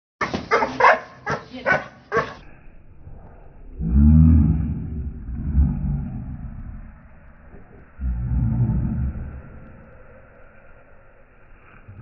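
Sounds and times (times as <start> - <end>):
dog barking: 0.5 - 2.4
dog growling deeply: 2.4 - 12.0.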